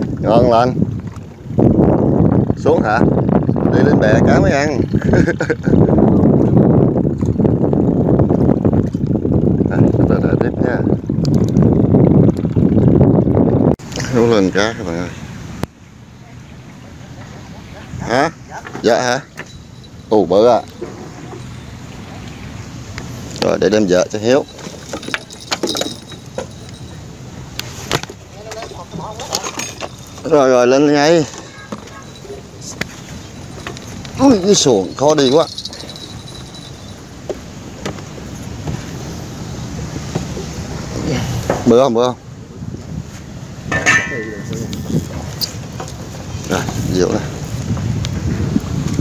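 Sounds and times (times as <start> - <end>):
wind buffeting microphone: 0.0 - 15.8, 17.0 - 49.0.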